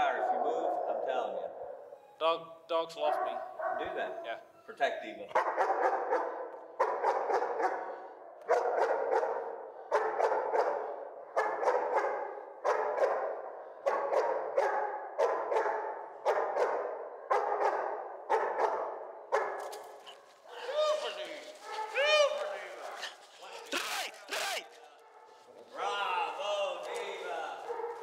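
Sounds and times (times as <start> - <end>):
dog barking in a hall: 0.0 - 2.3, 3.0 - 4.7, 5.3 - 28.0.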